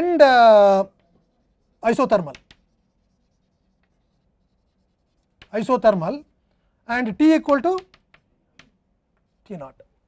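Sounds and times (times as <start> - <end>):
chalk scratching on blackboard: 0.8 - 6.2.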